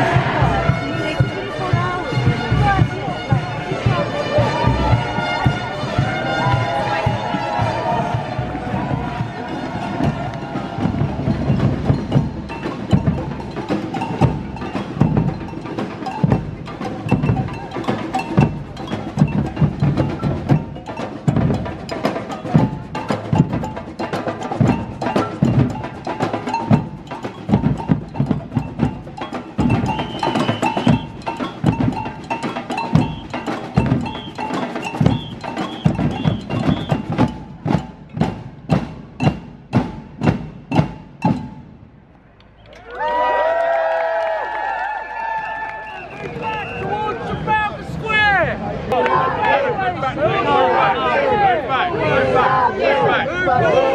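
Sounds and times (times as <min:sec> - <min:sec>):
samba drum band playing: 0:00.0 - 0:41.9.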